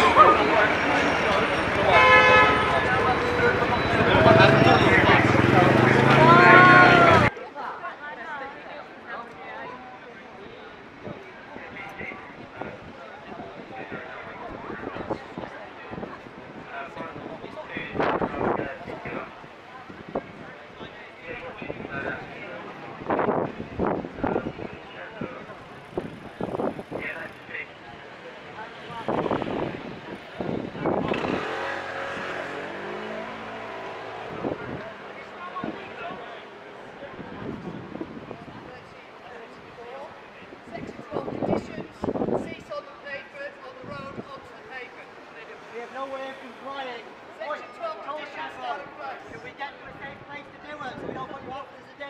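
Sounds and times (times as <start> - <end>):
people talking: 0.0 - 23.0
street voices: 0.0 - 52.0
traffic noise: 0.0 - 52.0
vehicle horn: 1.8 - 3.5.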